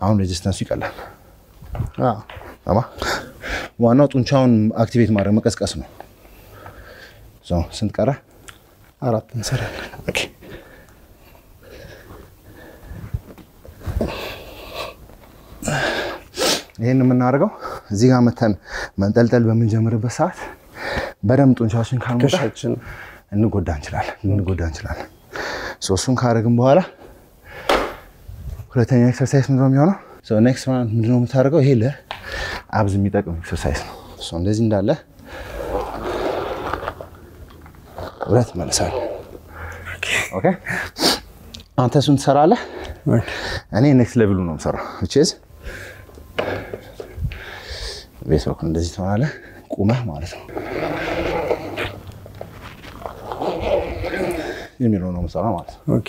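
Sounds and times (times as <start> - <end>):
man breathing: 6.2 - 7.3, 9.7 - 16.6, 20.5 - 21.2, 25.3 - 25.8, 27.1 - 28.2, 32.1 - 32.7, 35.2 - 35.8, 39.4 - 41.3, 42.6 - 43.7, 44.8 - 48.2
ab wheel rolling on hard floor: 50.5 - 54.3.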